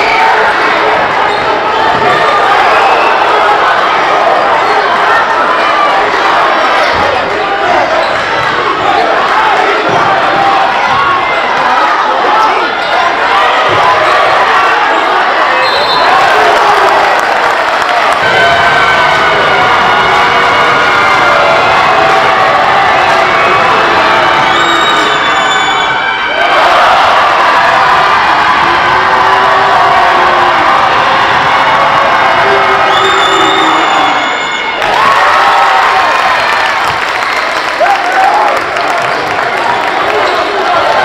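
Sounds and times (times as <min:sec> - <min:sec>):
crowd cheering and shouting: 0:00.0 - 0:41.0.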